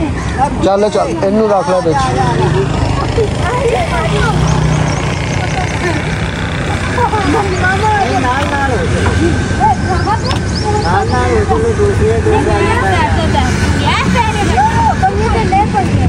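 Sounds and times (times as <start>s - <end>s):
people talking indistinctly: 0.0s - 16.0s.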